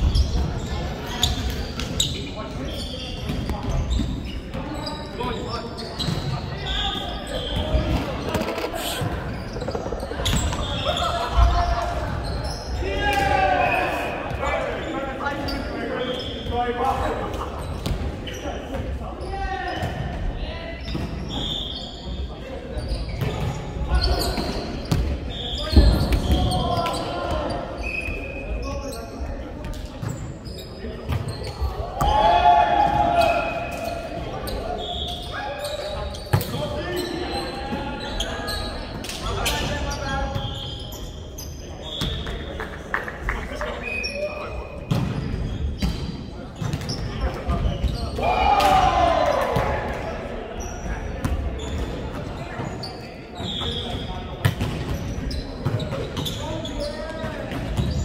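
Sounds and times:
players shouting: 0:12.8 - 0:14.5, 0:31.9 - 0:33.9, 0:48.2 - 0:49.9.

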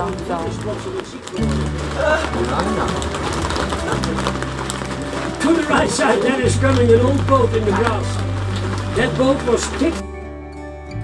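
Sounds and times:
low bass notes: 0:00.0 - 0:11.0.

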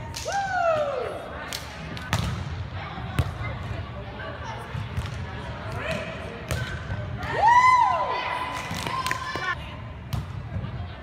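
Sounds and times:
volleyball slaps: 0:00.0 - 0:03.5.

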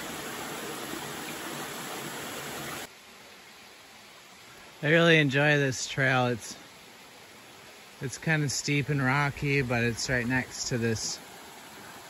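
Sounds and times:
quiet hiss: 0:00.0 - 0:12.0
small waterfall rushing: 0:00.0 - 0:12.0.

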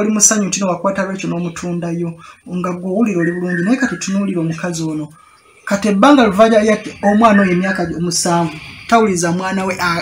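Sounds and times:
man talking: 0:00.0 - 0:10.0.

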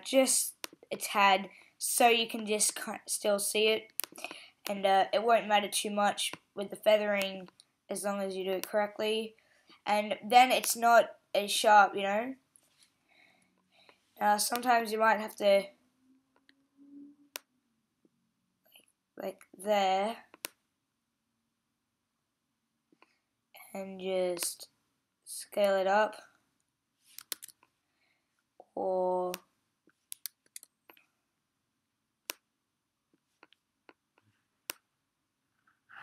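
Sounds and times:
computer mouse click: 0:27.2 - 0:27.6, 0:30.1 - 0:30.7.

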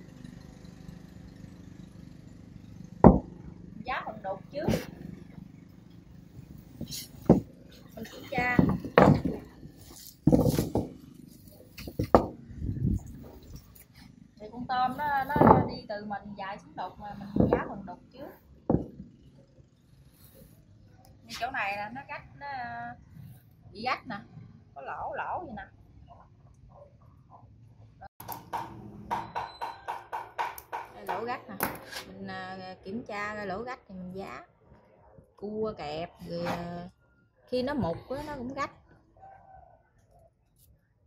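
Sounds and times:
wire frame knocks on wood: 0:03.0 - 0:03.3, 0:08.5 - 0:09.5, 0:10.2 - 0:11.0, 0:11.8 - 0:12.4, 0:15.3 - 0:15.8
rapid sharp knocks: 0:28.2 - 0:31.2.

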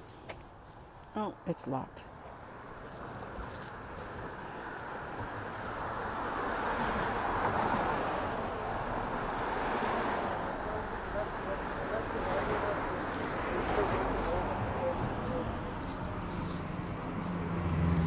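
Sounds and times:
footstep scuffs: 0:00.0 - 0:17.9
street noise: 0:00.0 - 0:18.0
murmur of voices: 0:10.2 - 0:16.2.

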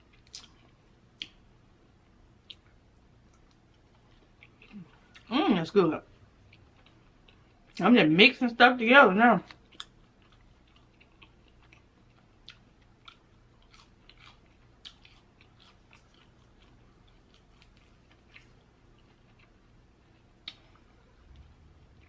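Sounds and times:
crackles of fried chicken eaten: 0:02.4 - 0:05.3, 0:09.4 - 0:22.0.

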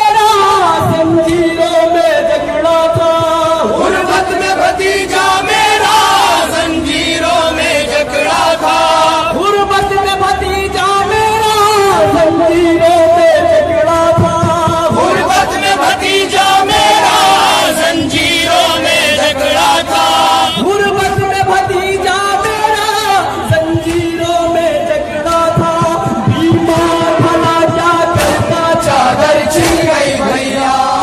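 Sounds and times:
man chanting a lament: 0:00.0 - 0:31.0.

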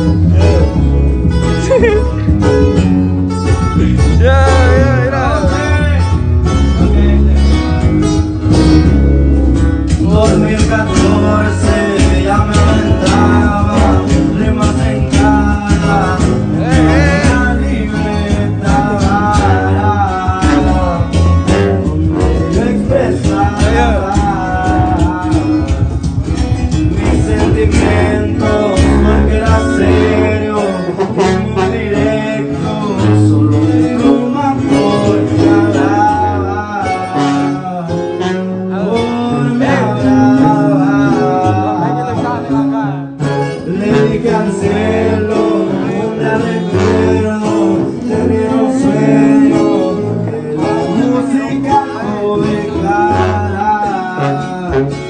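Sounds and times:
person singing: 0:00.0 - 0:02.4, 0:03.5 - 0:07.8, 0:09.9 - 0:55.0
plucked guitars: 0:00.0 - 0:55.0
sousaphone bass line: 0:00.0 - 0:55.0.

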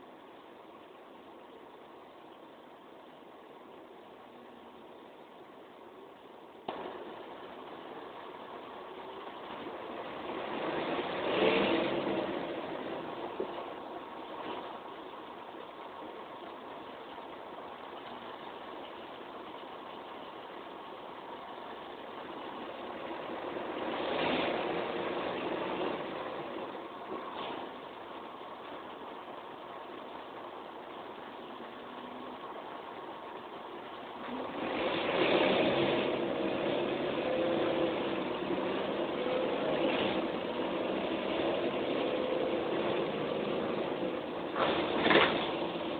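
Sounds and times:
bus diesel engine accelerating: 0:00.0 - 0:45.9.

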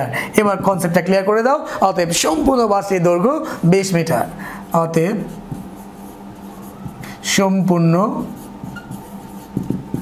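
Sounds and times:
steady low hum: 0:00.0 - 0:10.0
marker scratching on whiteboard: 0:00.4 - 0:01.4, 0:02.0 - 0:10.0.

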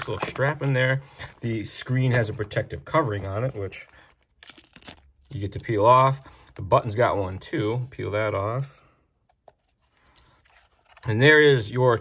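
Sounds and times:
plastic film peeling: 0:03.7 - 0:05.6.

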